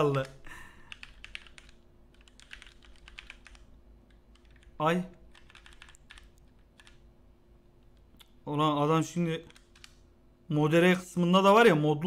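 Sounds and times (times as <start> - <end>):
keyboard typing clicks: 0.0 - 7.0, 9.4 - 10.0.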